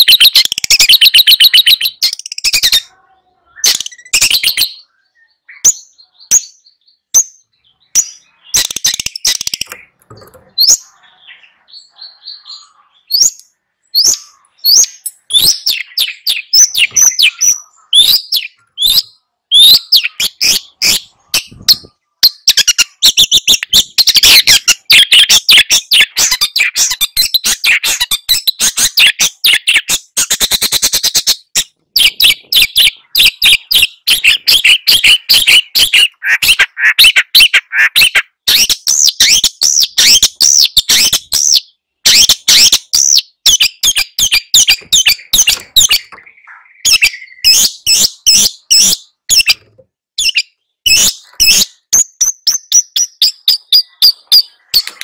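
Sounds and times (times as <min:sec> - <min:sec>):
bird singing sharp chattering notes: 0:00.0 - 0:02.9, 0:03.5 - 0:55.0.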